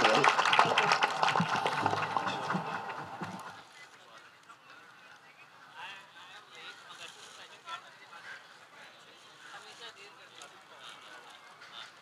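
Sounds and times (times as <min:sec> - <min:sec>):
audience clapping: 0:00.0 - 0:03.6.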